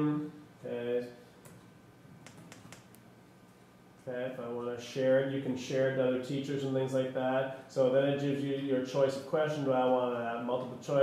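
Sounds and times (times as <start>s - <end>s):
laptop keyboard keystrokes: 2.2s - 3.0s.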